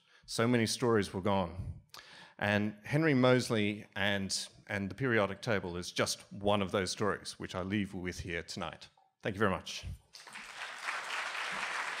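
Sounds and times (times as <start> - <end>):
audience applauding: 10.2 - 12.0.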